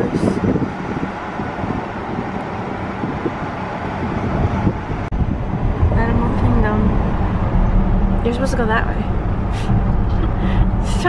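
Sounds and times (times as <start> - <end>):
road and wind noise in a car: 0.0 - 11.0.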